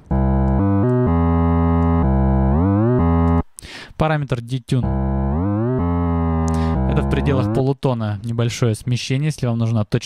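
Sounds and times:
synth bass gliding between notes: 0.0 - 3.4, 4.8 - 7.6.

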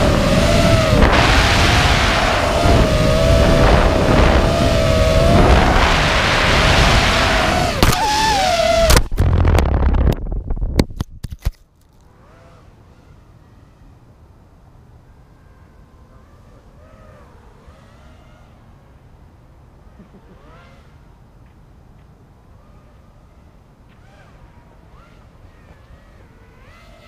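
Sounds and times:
drone motors whining: 0.0 - 10.4, 22.5 - 27.0.

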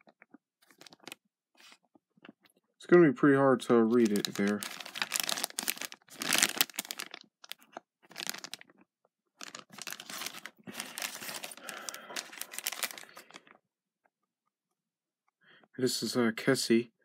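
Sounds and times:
plastic bags crinkling: 0.6 - 1.2, 3.8 - 8.8, 9.4 - 13.5.

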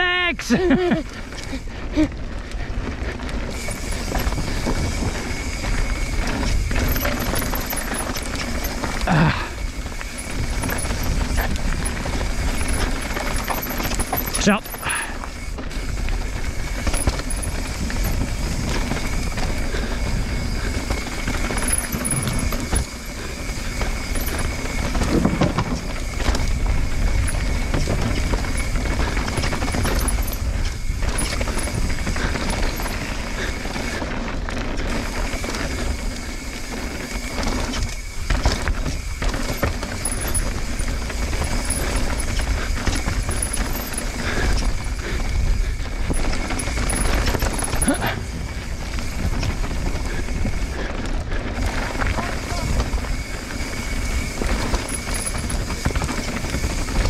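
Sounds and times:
bike rumbling and clattering: 0.0 - 57.0
bike tyres on dirt: 0.0 - 57.0.

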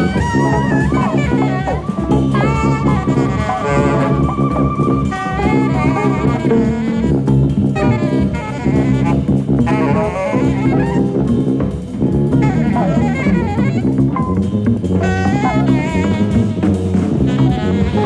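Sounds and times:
alto saxophone melody: 0.0 - 18.0
drum kit playing: 0.0 - 18.0
low bass line: 0.0 - 18.0.

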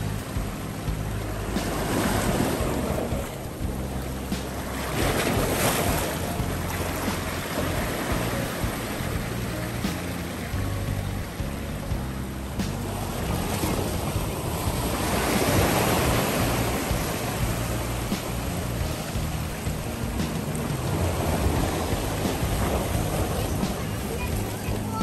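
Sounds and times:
ocean surf washing over rocks: 0.0 - 25.0
wave breaking: 0.0 - 25.0.

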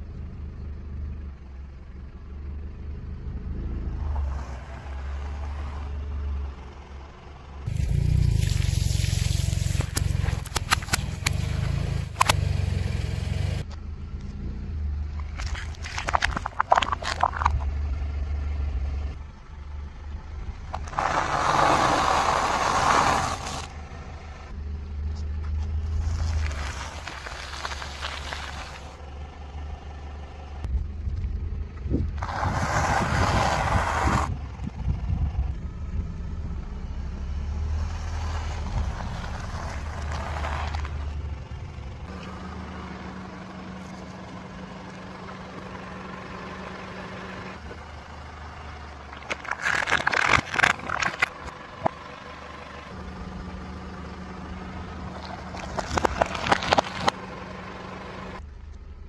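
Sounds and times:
low engine rumble: 0.0 - 59.0
tyre crushing food and packaging: 49.1 - 51.5, 55.2 - 57.2.

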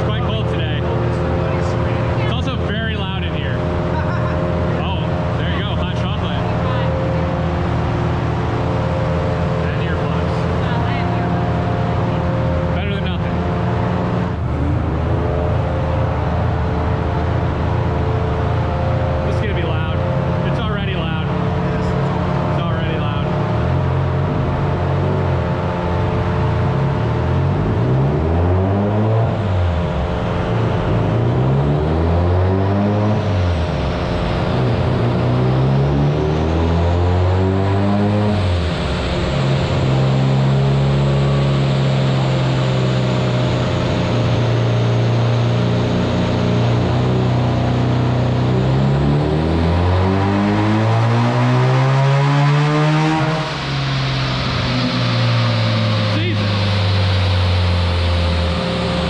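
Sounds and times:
rotary engine revving: 0.0 - 59.0.

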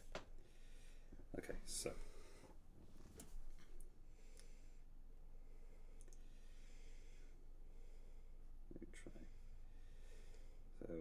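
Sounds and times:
faint sharp clicks: 6.0 - 6.2.

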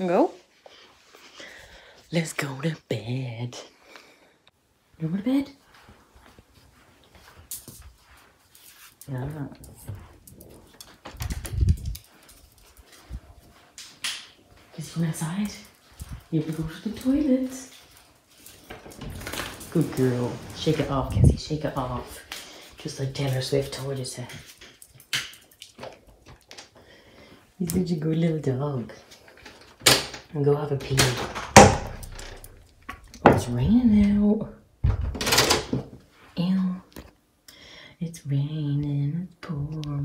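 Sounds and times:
sliding glass door opening: 18.7 - 22.0
dog claws clicking on tiles: 23.3 - 26.7
low thumps: 31.3 - 34.2.

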